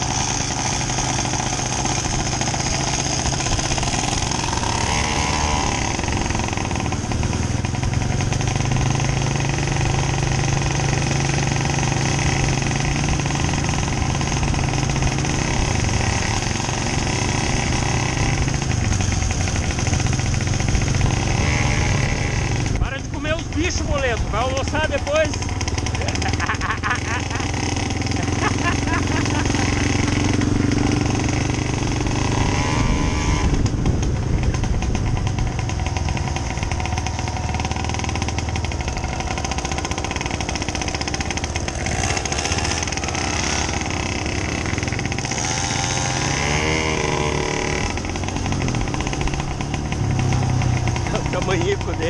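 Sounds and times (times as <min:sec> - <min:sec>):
small motorcycle engines running: 0:00.0 - 0:52.0.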